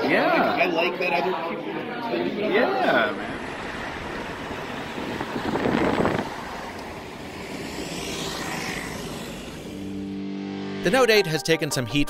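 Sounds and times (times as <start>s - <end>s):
street traffic: 0.0s - 10.9s
vehicle passing: 2.8s - 10.8s.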